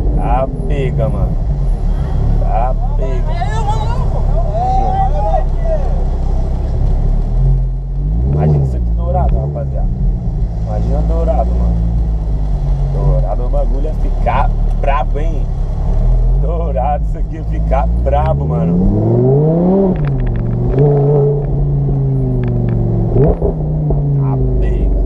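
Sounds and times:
car engine running from inside cabin: 0.0 - 25.0.

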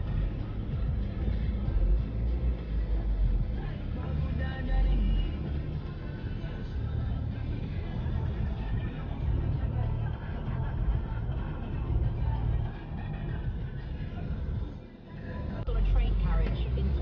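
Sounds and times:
car engine and road rumble: 0.0 - 17.0
car radio playing quietly: 0.0 - 17.0.

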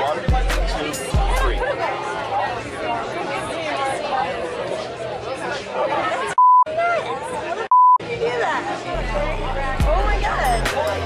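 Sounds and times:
censor bleeps: 6.4 - 6.7, 7.7 - 8.0.

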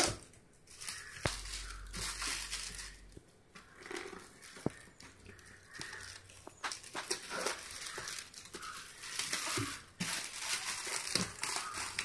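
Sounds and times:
foil gift wrap tearing: 0.0 - 4.8, 5.4 - 12.0.

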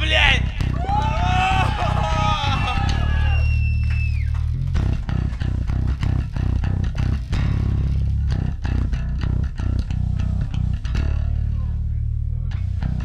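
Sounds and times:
bass guitar: 0.0 - 13.0
guitar tone bending down: 0.0 - 13.0.

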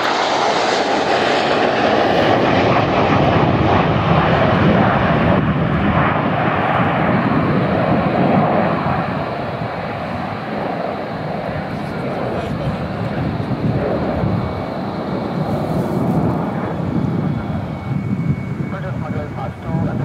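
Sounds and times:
fighter jets flying low: 0.0 - 20.0.

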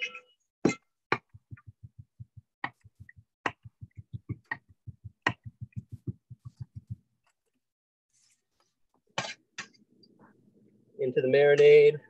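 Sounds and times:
knife chopping on cutting board: 1.1 - 7.0.

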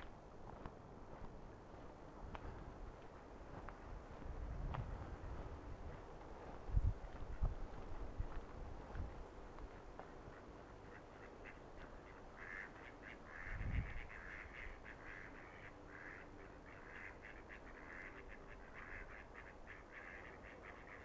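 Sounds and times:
ducks quacking: 10.0 - 21.0.

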